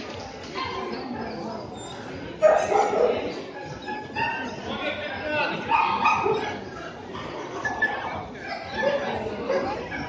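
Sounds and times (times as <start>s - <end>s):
low hall chatter: 0.0s - 10.0s
dog barking: 2.4s - 3.2s, 5.7s - 6.5s.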